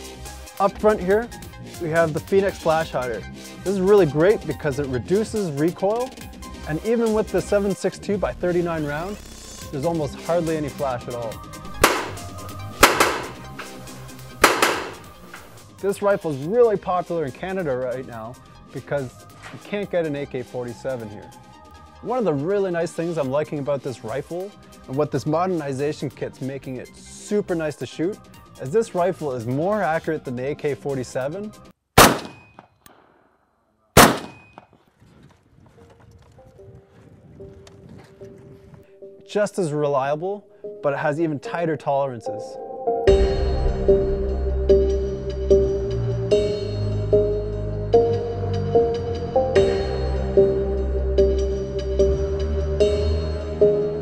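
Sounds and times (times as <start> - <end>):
background music: 0.0 - 31.7, 36.3 - 54.0
rifle shots: 11.7 - 13.5, 14.4 - 15.2, 32.0 - 32.6, 34.0 - 34.6.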